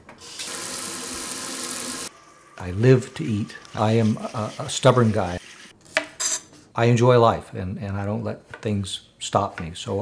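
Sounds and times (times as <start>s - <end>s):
faucet spraying water: 0.2s - 2.1s.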